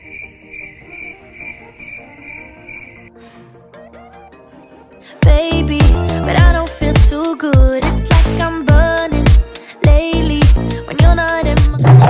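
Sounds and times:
cricket chirping: 0.0 - 3.1
soft background music: 0.0 - 12.0.

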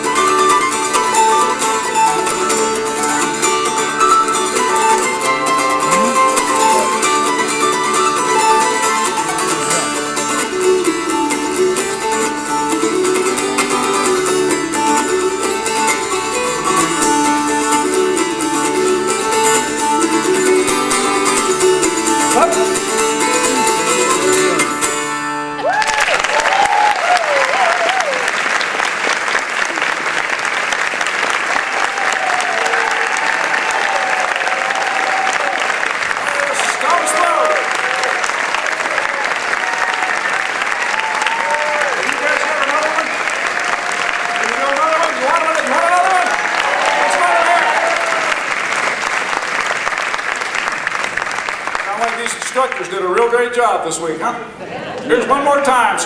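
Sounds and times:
audience applauding: 3.1 - 9.9, 25.6 - 53.5
voices calling out: 5.8 - 7.0.

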